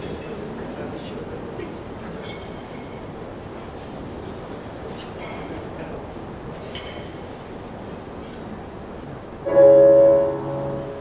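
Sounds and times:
low rumbling hall noise: 7.2 - 11.0.

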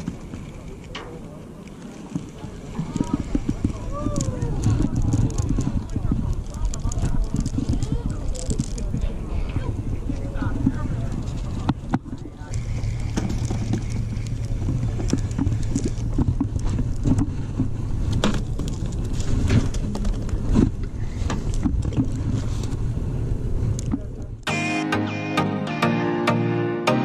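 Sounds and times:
low outdoor rumble: 0.0 - 24.5
music: 24.5 - 27.0.

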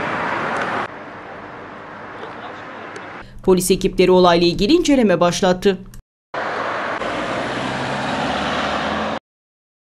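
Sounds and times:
road traffic hiss: 0.0 - 3.3.

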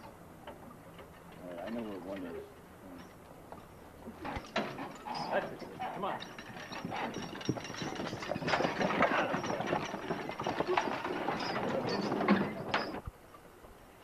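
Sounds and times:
clatter of horse hooves: 0.0 - 13.4
harness and chains rattling: 0.9 - 13.0.

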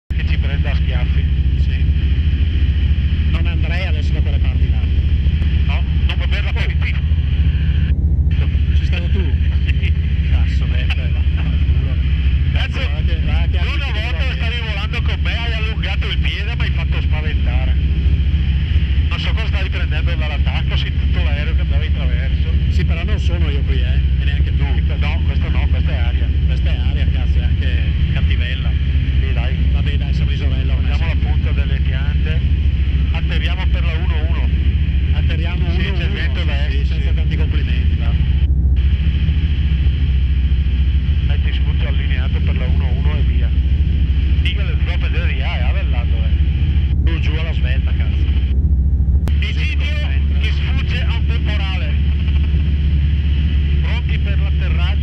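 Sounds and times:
ultralight aircraft engine drone: 0.1 - 55.0.

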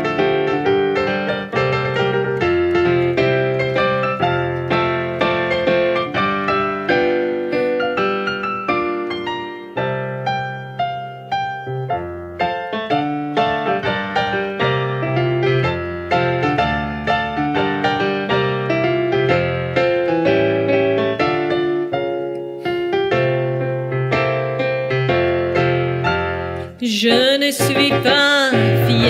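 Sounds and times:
digital piano playing: 0.0 - 29.0
woman singing with vibrato: 26.8 - 29.0.

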